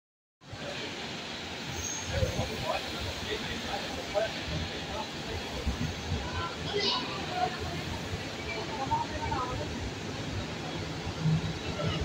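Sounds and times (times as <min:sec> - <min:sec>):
people talking on platform: 0:00.4 - 0:12.0
subway train rumbling in tunnel: 0:00.4 - 0:12.0.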